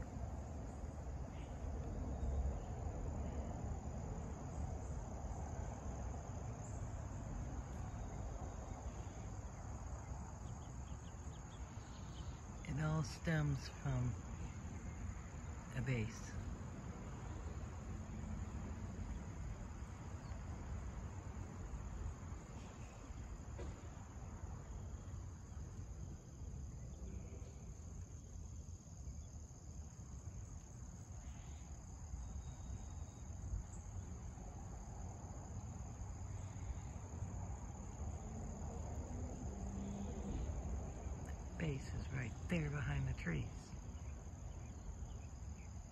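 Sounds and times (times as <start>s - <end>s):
crickets chirping: 0.0s - 45.9s.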